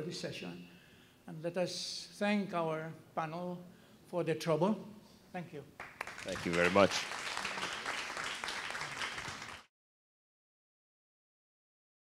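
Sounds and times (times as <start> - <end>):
audience applauding: 5.8 - 9.7.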